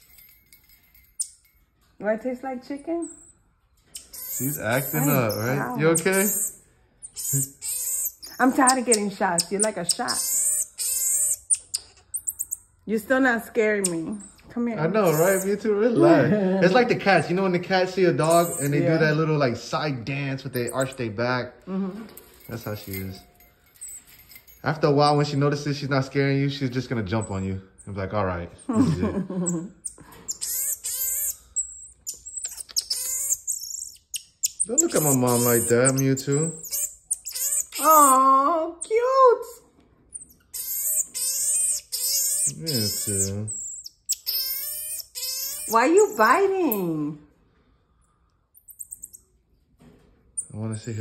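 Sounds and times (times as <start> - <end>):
marmoset trilling calls: 2.9 - 19.1, 20.5 - 21.1, 27.2 - 46.8, 48.6 - 49.4, 50.4 - 51.0.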